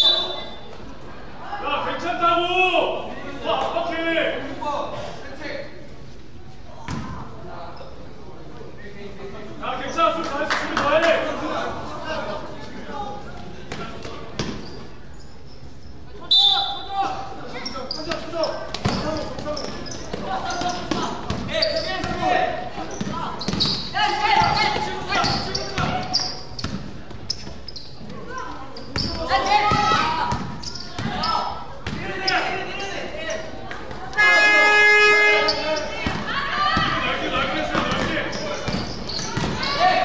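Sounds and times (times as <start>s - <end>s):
basketball bouncing on court: 18.1s - 22.3s, 22.9s - 27.6s, 28.9s - 32.1s, 36.0s - 37.0s, 37.7s - 39.8s
players shouting: 20.0s - 26.3s, 29.1s - 33.2s, 34.1s - 40.0s.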